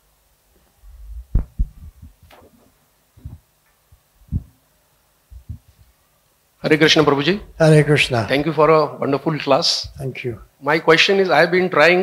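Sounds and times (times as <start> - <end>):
microphone handling thumps: 0.9 - 4.6, 5.3 - 5.9.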